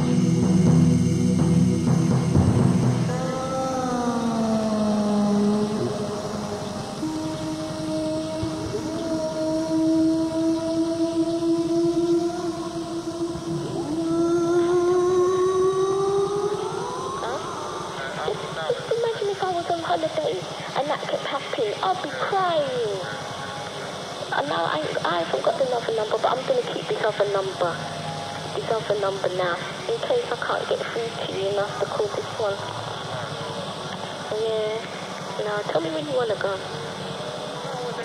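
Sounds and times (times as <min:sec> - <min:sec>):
ambient electronic music: 0:00.0 - 0:20.6.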